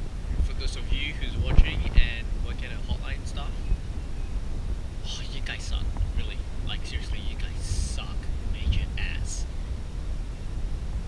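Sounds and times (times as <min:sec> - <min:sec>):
steady low rumble: 0:00.0 - 0:11.0
man whispering: 0:05.0 - 0:09.5.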